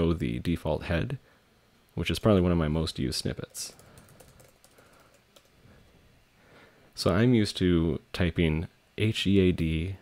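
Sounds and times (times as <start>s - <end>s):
keyboard typing: 3.5s - 5.6s.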